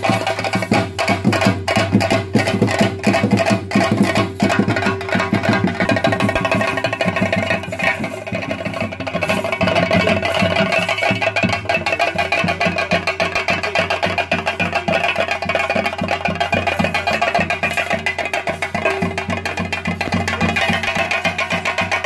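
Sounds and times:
drums beaten with sticks: 0.0 - 22.0
steady ringing tones: 0.0 - 22.0.

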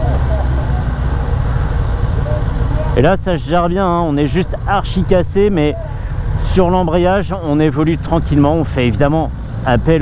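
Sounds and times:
motorcycle engine low rumble: 0.0 - 10.0.

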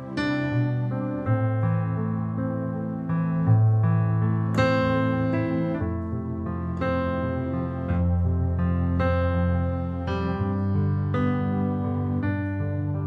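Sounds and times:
sustained piano chords on keyboard: 0.0 - 13.0.

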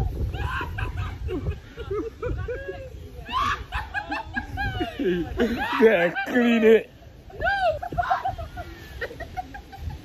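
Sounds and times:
wind rumble on microphone: 0.0 - 6.2, 6.9 - 10.0
people giggling: 0.4 - 6.8, 7.6 - 10.0.

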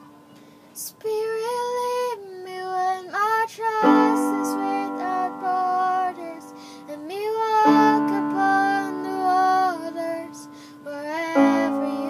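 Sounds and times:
girl singing slow melody: 0.0 - 12.0
held accompanying chord: 3.8 - 12.0.

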